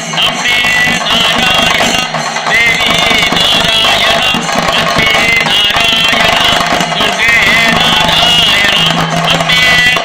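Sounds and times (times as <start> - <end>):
drums played fast with sticks: 0.0 - 10.0.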